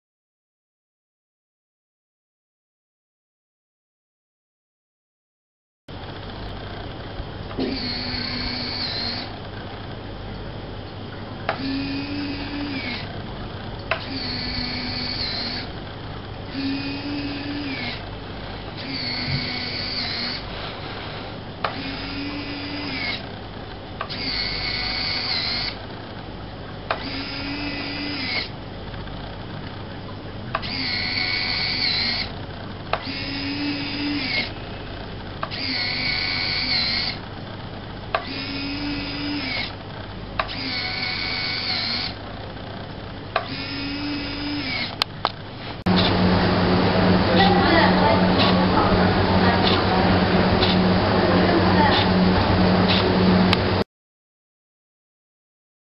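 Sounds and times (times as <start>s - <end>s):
landing gear motor whining: 6.0s - 9.9s, 11.5s - 13.3s, 13.9s - 26.1s, 26.9s - 29.5s, 30.5s - 37.3s, 38.2s - 53.8s.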